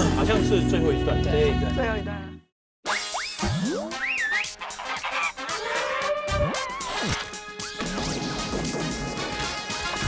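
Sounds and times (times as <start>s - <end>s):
jingle music: 0.0s - 2.4s
cartoon crashes and clattering: 6.9s - 10.0s.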